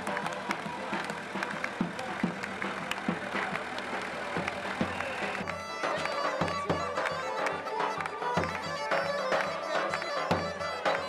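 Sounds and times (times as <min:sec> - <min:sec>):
large drum beating: 0:00.0 - 0:06.9
sustained wind instrument: 0:02.7 - 0:11.0
accordion: 0:04.8 - 0:11.0.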